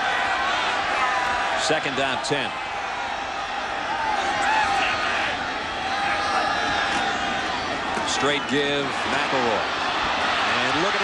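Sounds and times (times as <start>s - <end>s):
distant shouts: 0.0s - 11.0s
stadium crowd din: 0.0s - 11.0s.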